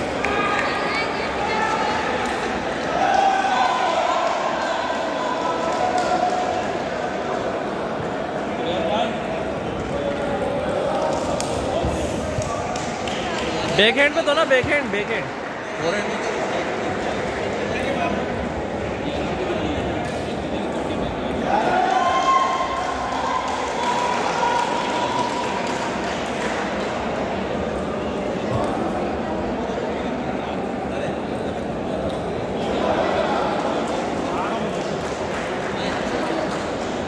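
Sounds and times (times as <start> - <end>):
chatter echoing in a hall: 0.0 - 37.0.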